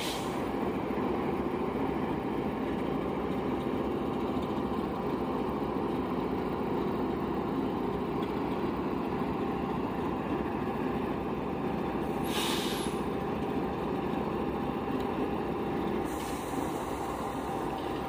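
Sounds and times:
brief sharp hiss: 0.0 - 0.5, 12.2 - 13.0, 16.1 - 17.2
train wheels rumbling on rails: 0.0 - 18.0.

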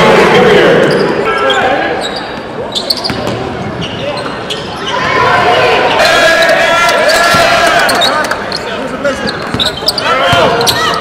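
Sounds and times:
indistinct voices in echoing gym: 0.0 - 11.0
basketball bouncing on wooden floor: 3.0 - 3.5.

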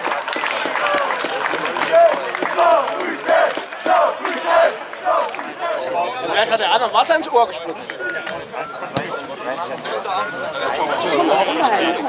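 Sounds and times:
men shouting chant-like calls: 1.9 - 6.6.

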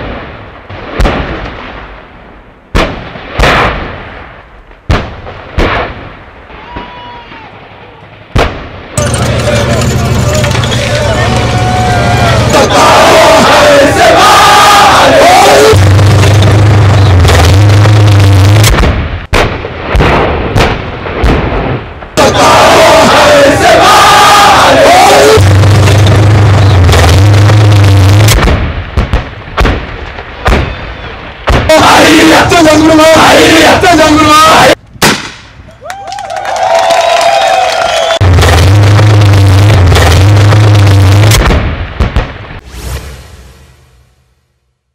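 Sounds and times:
explosion: 0.0 - 7.4, 8.1 - 32.5, 38.2 - 44.5
heavy gunshots or blasts: 2.7 - 6.4, 8.3 - 32.5, 38.2 - 43.4
loud low drone: 9.0 - 19.2, 22.2 - 28.5, 38.2 - 41.5, 42.6 - 44.7
loud low hum: 9.0 - 19.2, 22.2 - 28.6, 38.2 - 41.6
soldiers chanting: 10.9 - 15.8, 22.2 - 25.4, 31.7 - 34.8.

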